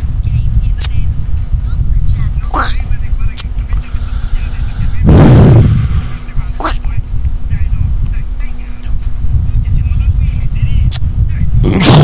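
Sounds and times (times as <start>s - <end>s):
faint voices: 0.2s - 12.0s.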